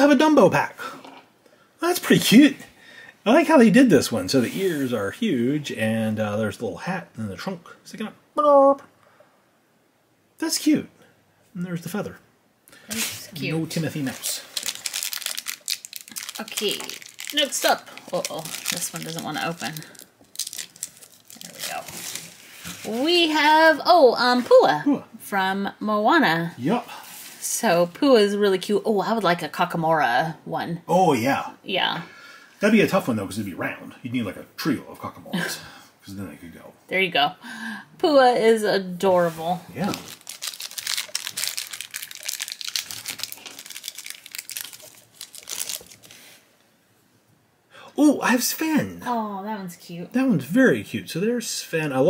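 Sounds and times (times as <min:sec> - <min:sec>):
plastic wrapper crinkling and tearing: 0:12.9 - 0:23.0, 0:39.7 - 0:46.3.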